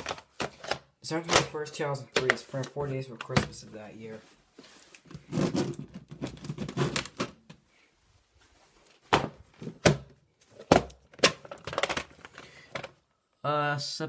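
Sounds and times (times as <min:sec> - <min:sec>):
plastic cases rustling and clattering: 0:00.0 - 0:07.6, 0:08.4 - 0:13.0.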